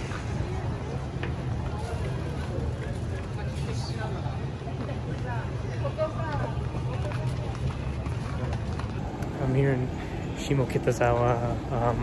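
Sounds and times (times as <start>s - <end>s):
passers-by talking faintly: 0.0s - 12.0s.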